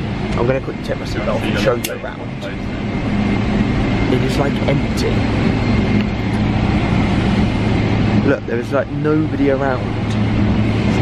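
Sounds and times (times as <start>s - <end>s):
airliner cabin rush: 0.0s - 11.0s
constant low hum: 0.0s - 11.0s.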